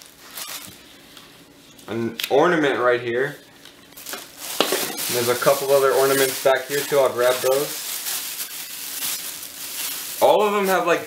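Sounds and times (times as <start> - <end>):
plastic bag crinkling: 0.0 - 0.9, 3.9 - 11.0.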